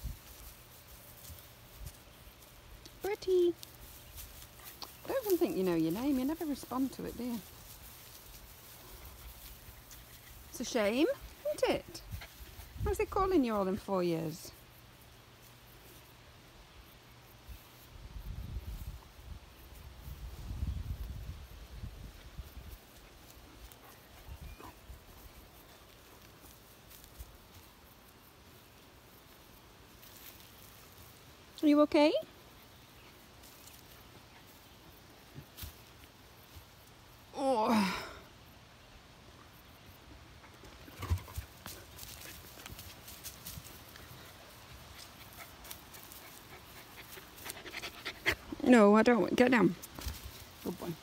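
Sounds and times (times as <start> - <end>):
light ticks and rustles: 0.0 - 37.3, 39.3 - 51.0.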